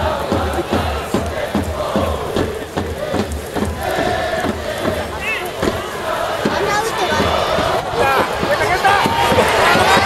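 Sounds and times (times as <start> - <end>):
crowd chanting in unison: 0.0 - 10.0
rhythmic drum beats: 0.0 - 10.0.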